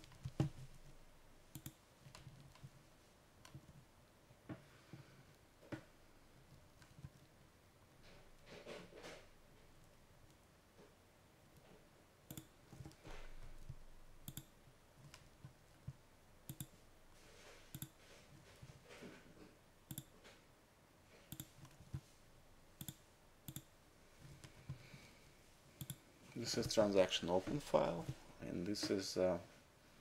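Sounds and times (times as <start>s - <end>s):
computer mouse clicks: 1.5s - 2.7s, 12.3s - 13.0s, 13.6s - 16.8s, 17.7s - 18.0s, 19.9s - 20.1s, 21.3s - 22.0s, 22.8s - 23.7s, 25.8s - 26.0s.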